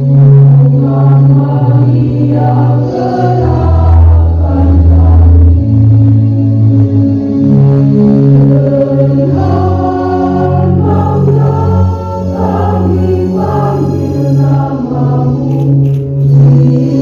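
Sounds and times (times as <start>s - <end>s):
choir singing slow chords: 0.0s - 17.0s.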